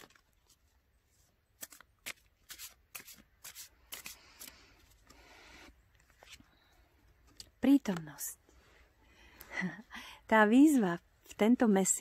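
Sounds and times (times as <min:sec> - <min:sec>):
cards being shuffled: 0:00.0 - 0:05.2, 0:05.9 - 0:06.6
soft rustle of cards: 0:00.0 - 0:09.5.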